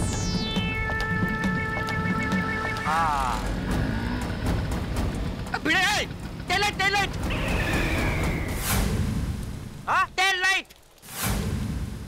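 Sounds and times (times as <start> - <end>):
motor scooter engine: 1.8 - 8.5
rain hiss: 7.2 - 12.0.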